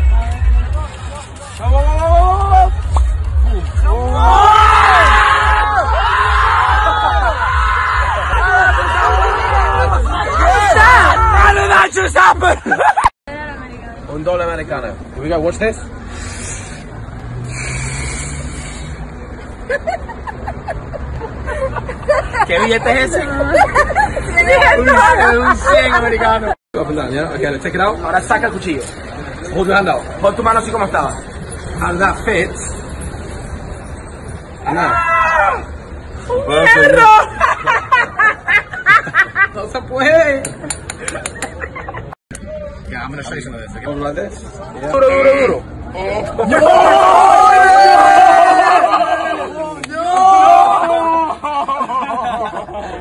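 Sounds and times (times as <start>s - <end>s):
street noise: 0.0s - 53.0s.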